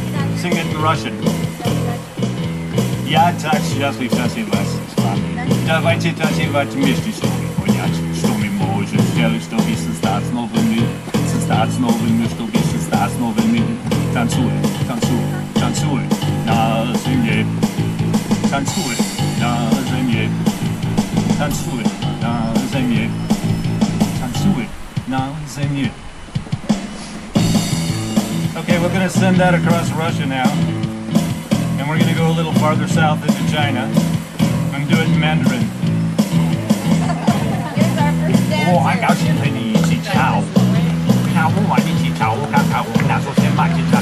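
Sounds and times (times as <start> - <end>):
electronic keyboard chords: 0.0 - 44.0.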